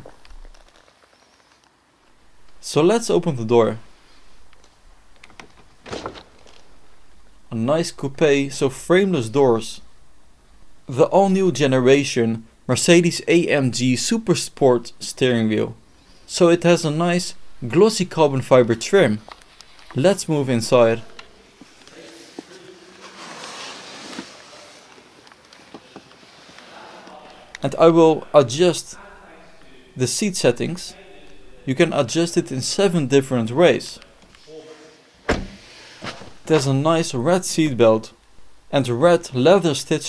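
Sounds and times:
clothing rustling against seat: 21.5 - 27.0
car door unlatching clunk: 35.2 - 36.3.

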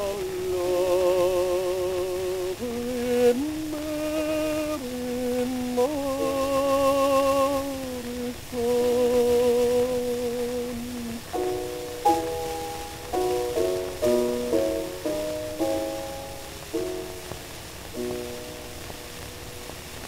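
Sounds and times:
piano chords: 0.0 - 20.0.

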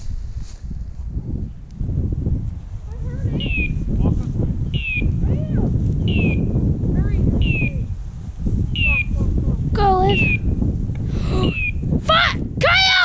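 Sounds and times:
wind noise on microphone: 0.0 - 13.0.

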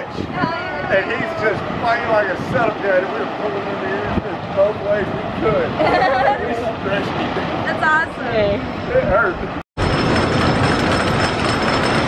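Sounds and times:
roller coaster rumble and clatter: 0.0 - 12.0.

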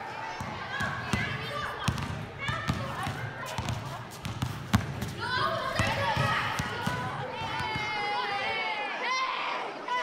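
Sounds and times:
sneakers squeaking: 0.2 - 8.2
basketball bouncing on concrete: 0.4 - 7.9
children's voices: 5.1 - 10.0.

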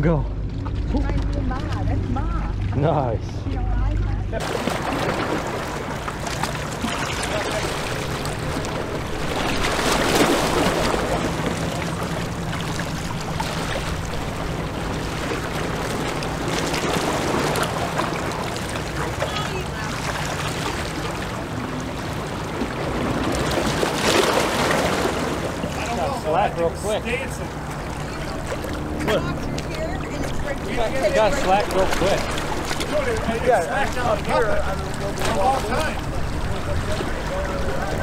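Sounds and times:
steady low hum: 0.0 - 38.0
water at a rocky seawall: 0.0 - 38.0
wind: 0.0 - 38.0.

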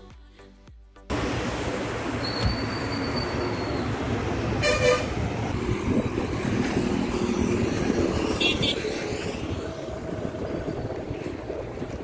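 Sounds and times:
road traffic rumble: 1.1 - 12.0
vehicle horn toot: 4.6 - 5.1, 8.4 - 8.8.

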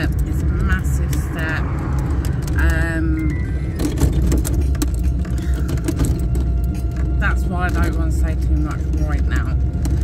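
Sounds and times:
small rattles and clicks: 0.0 - 10.0
vehicle rumble inside cabin: 0.0 - 10.0.

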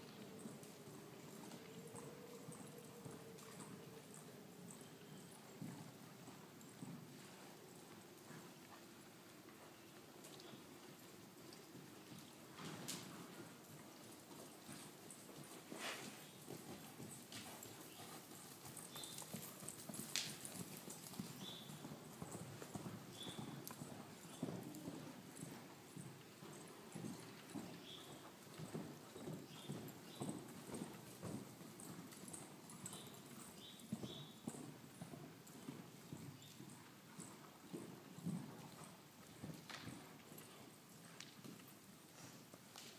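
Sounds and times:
horse hoofbeats on sand: 11.7 - 41.7.

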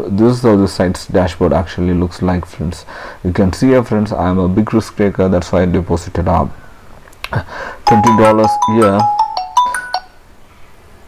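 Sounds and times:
smartphone ringtone melody: 7.9 - 10.2.

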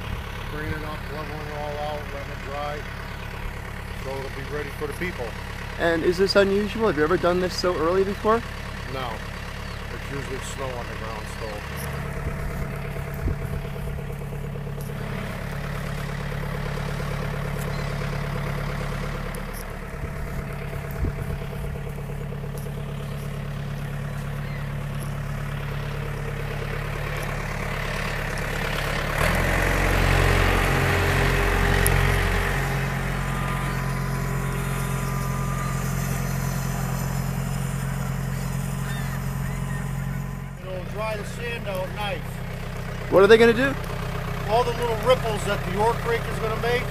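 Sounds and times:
tractor diesel engine: 0.0 - 46.9.

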